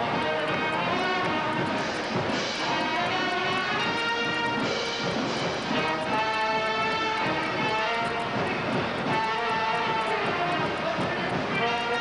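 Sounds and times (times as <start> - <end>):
school band playing: 0.0 - 12.0
trumpets holding long notes: 2.5 - 4.7.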